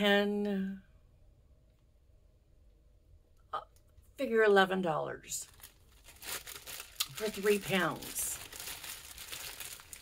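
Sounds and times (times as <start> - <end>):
faint steady hum: 0.0 - 10.0
woman saying uh: 7.1 - 8.4.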